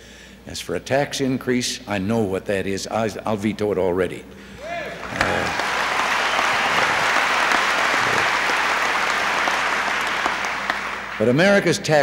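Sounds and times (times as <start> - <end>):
large audience applauding: 4.6 - 11.4.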